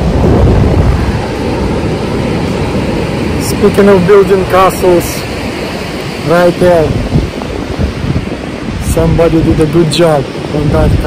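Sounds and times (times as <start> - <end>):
ocean surf rushing: 0.0 - 11.0
wind buffeting microphone: 0.0 - 11.0.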